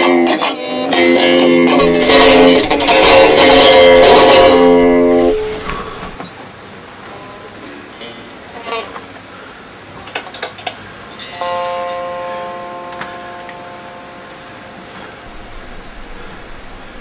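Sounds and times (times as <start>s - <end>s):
electric guitar strings ringing: 0.0s - 6.2s, 11.1s - 16.3s.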